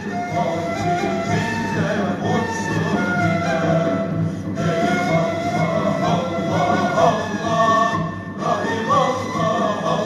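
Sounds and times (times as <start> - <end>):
men's choir singing: 0.0 - 10.0.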